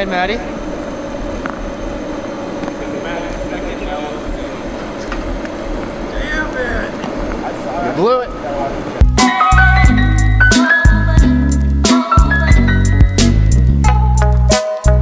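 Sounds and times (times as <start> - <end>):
constant low hum: 0.0 - 14.0
voices: 2.6 - 9.0.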